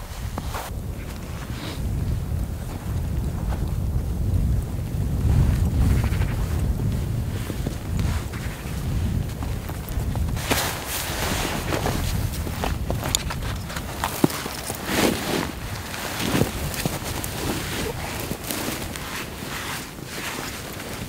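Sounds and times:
footsteps crunching through snow: 0.0s - 4.4s, 6.3s - 21.0s
wind buffeting microphone: 0.0s - 21.0s.

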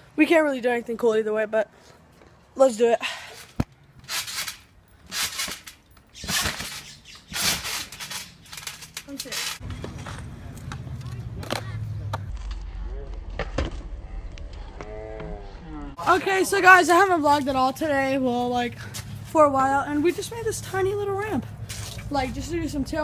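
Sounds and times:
trampoline springs creaking: 3.3s - 10.3s
steady low rumble: 9.6s - 16.0s.

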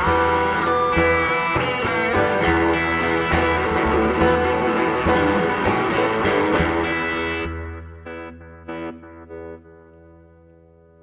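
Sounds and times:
guitars and cello playing: 0.0s - 10.9s.

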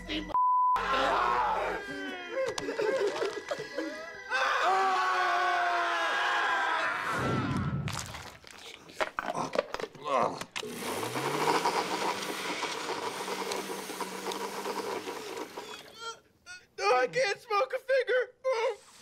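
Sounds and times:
men screaming and yelling: 0.8s - 7.6s.

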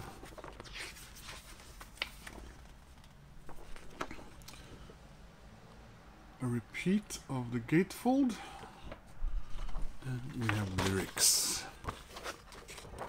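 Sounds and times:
paper rustling and sliding: 0.0s - 4.8s, 9.3s - 13.0s.

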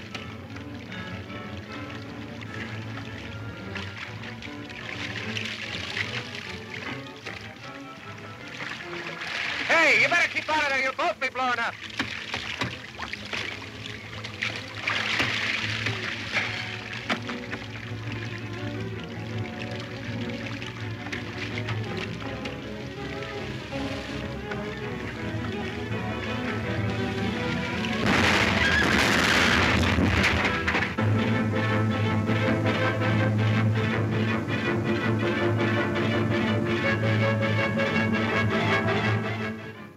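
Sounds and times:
dramatic orchestral film music: 0.0s - 39.9s
explosion with rumbling: 28.0s - 31.0s.

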